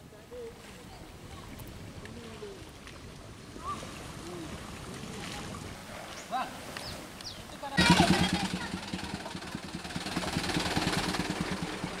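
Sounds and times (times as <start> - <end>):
diesel truck engine running: 7.8 - 12.0.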